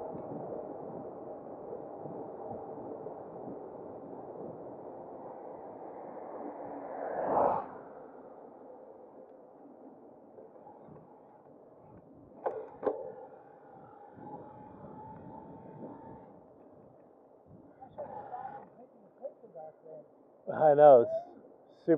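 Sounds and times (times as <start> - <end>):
wind and tyre noise: 0.0 - 21.6
car passing: 5.0 - 9.2.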